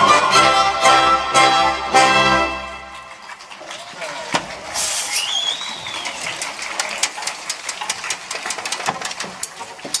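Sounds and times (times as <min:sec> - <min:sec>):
audience applauding: 0:02.4 - 0:09.8.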